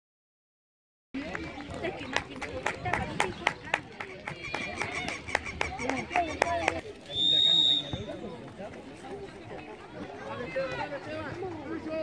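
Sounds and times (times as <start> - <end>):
referee's whistle blast: 7.1 - 8.1.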